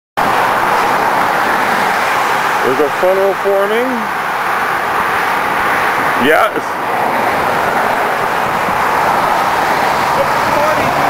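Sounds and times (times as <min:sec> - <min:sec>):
highway traffic rushing: 0:00.2 - 0:11.0.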